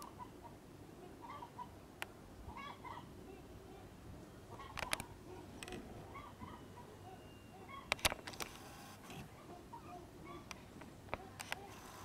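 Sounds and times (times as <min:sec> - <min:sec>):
chickens clucking softly: 0:00.0 - 0:01.8, 0:02.5 - 0:03.9, 0:04.5 - 0:08.0
sharp clicks: 0:04.7 - 0:05.8, 0:07.9 - 0:09.2.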